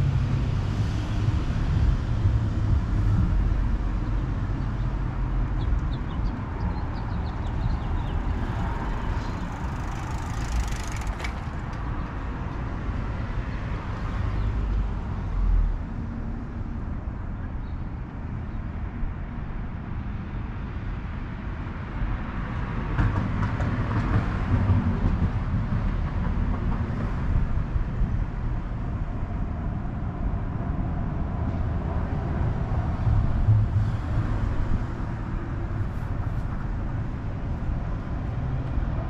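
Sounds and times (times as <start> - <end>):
heavy vehicle passing: 0.0 - 11.8
street traffic rumble: 0.0 - 39.0.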